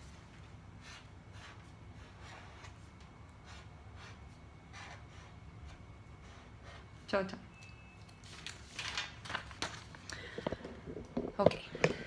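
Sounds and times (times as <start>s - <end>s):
low room hum: 0.0s - 12.0s
marker scratching on paper: 0.8s - 7.1s.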